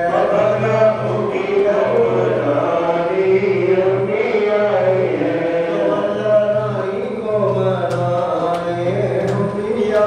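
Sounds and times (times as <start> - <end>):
voices chanting together: 0.0 - 10.0.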